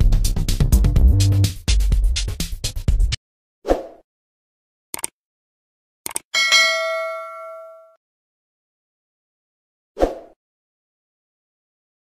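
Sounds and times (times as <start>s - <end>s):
short clicks: 4.9s - 5.2s, 6.0s - 6.3s
notification bell ding: 6.4s - 8.0s.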